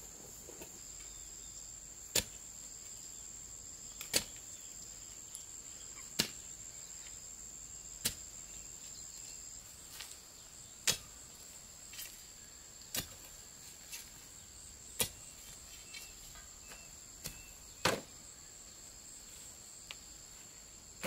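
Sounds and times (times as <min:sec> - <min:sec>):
high insect drone: 0:00.0 - 0:21.0
digging tool chopping into soil: 0:02.1 - 0:02.4, 0:04.0 - 0:04.4, 0:06.1 - 0:06.4, 0:08.0 - 0:08.3, 0:10.8 - 0:11.1, 0:12.9 - 0:14.1, 0:15.0 - 0:15.2, 0:16.7 - 0:18.1.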